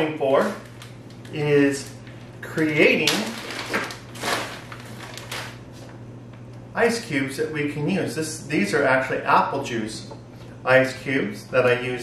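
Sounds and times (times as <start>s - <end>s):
plastic bag crinkling: 0.3s - 6.0s.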